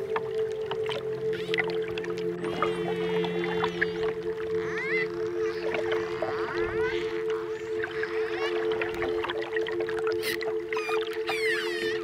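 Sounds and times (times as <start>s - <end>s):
slow ambient music: 0.0s - 12.0s
dolphin whistles and clicks: 10.2s - 12.0s.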